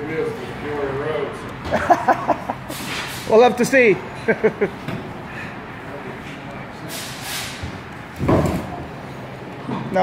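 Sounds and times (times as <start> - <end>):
short air hiss: 6.9 - 7.6
tire dull thump: 7.6 - 8.9.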